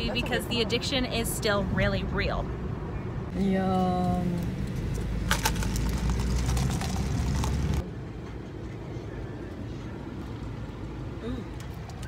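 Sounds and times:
plastic cup clicking and rattling: 5.3s - 7.7s.

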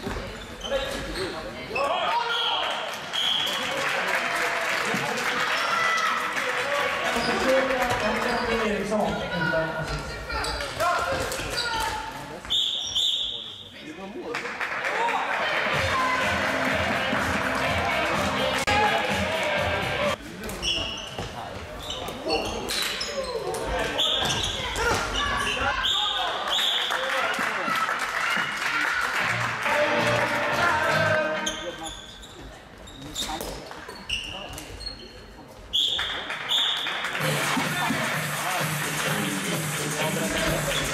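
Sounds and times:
sports shoes squeaking on floor: 0.0s - 2.5s, 7.1s - 13.8s, 20.3s - 26.8s, 31.2s - 36.8s, 40.2s - 40.9s
referee's whistle: 3.1s - 3.6s, 12.5s - 13.8s, 35.7s - 36.9s
players shouting: 15.1s - 20.2s.

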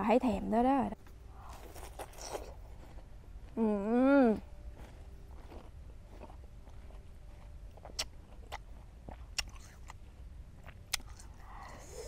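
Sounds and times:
crisp apple chewing crunches: 1.4s - 3.6s, 4.4s - 10.0s, 10.6s - 11.4s.

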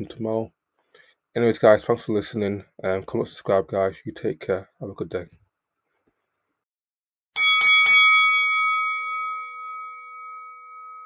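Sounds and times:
boxing ring bell ringing: 7.4s - 11.0s.

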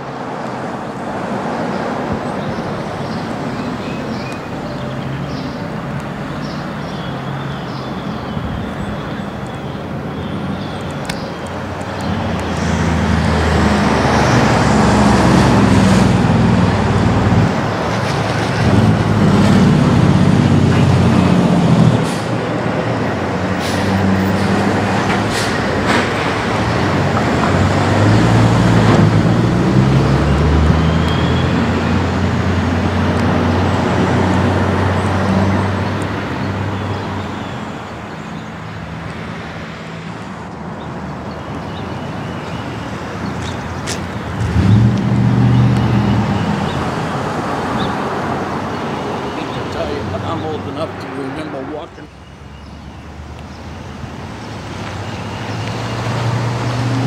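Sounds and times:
heavy vehicles passing: 0.0s - 57.0s.

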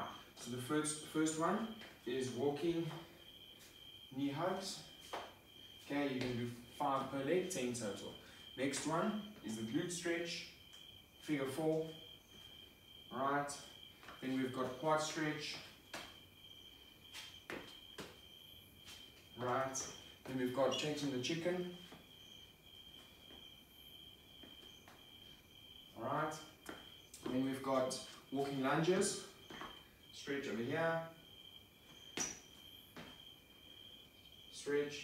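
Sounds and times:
footsteps on rubber floor: 4.9s - 7.1s, 15.4s - 20.5s, 21.8s - 23.6s, 24.2s - 25.5s, 26.6s - 28.6s, 29.3s - 29.9s, 31.8s - 33.9s
footfalls on gym floor: 17.0s - 20.4s, 29.4s - 29.8s, 31.9s - 33.4s.

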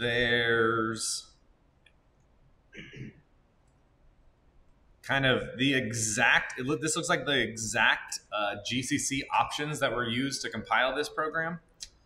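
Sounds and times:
voice murmuring: 0.0s - 1.2s, 5.1s - 11.5s.

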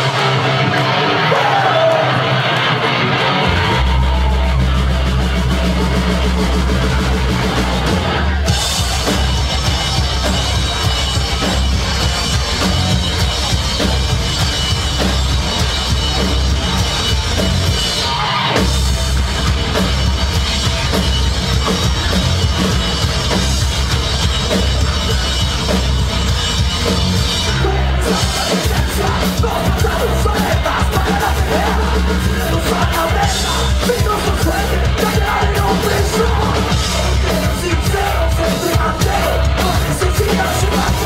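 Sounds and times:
live heavy rock band: 0.0s - 41.0s.

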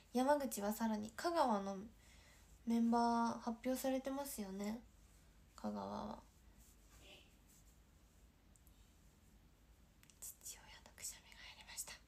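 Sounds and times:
woman whispering: 10.0s - 12.0s.

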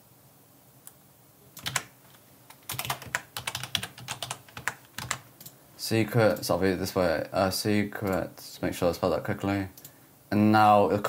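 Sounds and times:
typing on computer keyboard: 1.6s - 1.9s, 2.5s - 5.6s.

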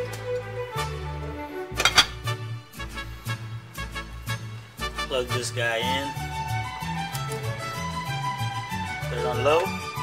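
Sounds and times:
background music with bass line: 0.0s - 10.0s
glass lid clinking on ceramic: 1.8s - 2.2s.

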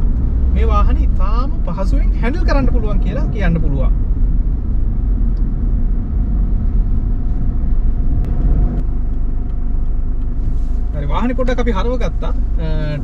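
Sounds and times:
road and engine rumble in car: 0.0s - 13.0s.

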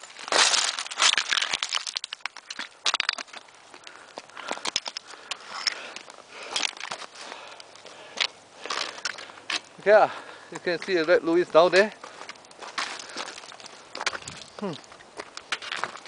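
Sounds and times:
boots crunching on loose rock: 0.0s - 7.6s, 8.2s - 16.0s
stones clattering underfoot: 0.0s - 16.0s.

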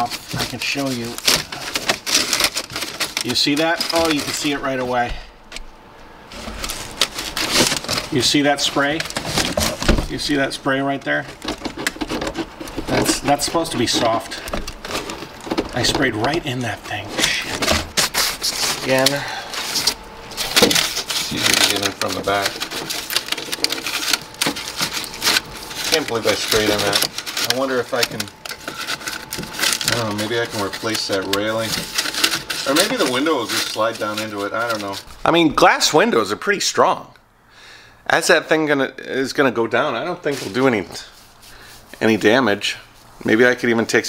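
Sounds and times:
aluminium foil crinkling: 0.0s - 5.6s, 6.3s - 35.5s.

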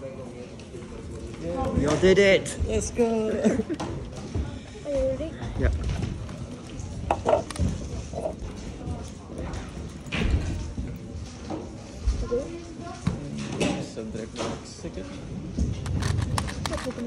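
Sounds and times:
background voices in a hall: 0.0s - 17.0s.

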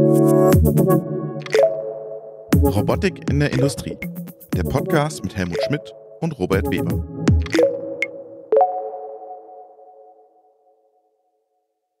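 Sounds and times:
synthesizer chord ringing: 0.0s - 2.6s, 7.0s - 10.4s.

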